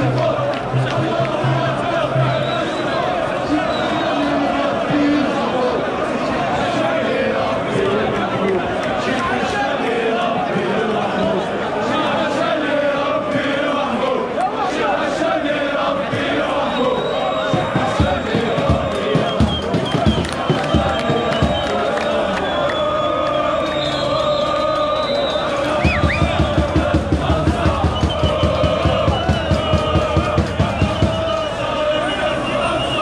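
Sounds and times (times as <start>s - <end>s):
crowd chanting: 0.0s - 33.0s
low thumping beat: 17.6s - 21.6s, 25.9s - 31.3s.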